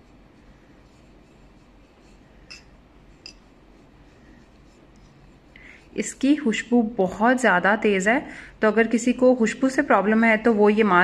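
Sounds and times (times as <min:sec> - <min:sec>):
brush scraping paste in a bowl: 0:00.0 - 0:06.7.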